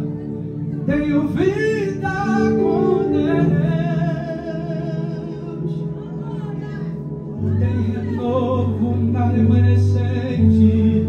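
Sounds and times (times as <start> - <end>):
man singing into a microphone: 0.7 - 6.8, 7.4 - 11.0.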